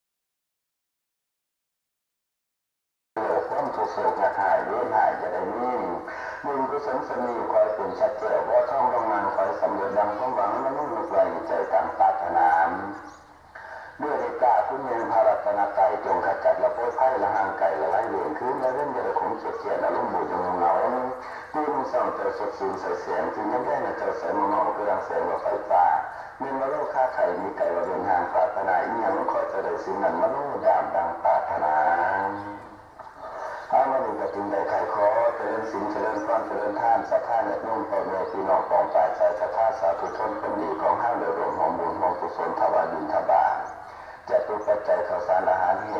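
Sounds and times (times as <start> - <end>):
muffled person speaking: 3.2 - 45.9.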